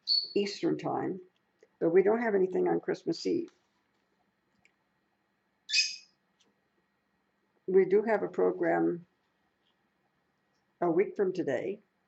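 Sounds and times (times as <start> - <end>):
parrot squawking: 0.1 - 0.5, 5.7 - 6.1.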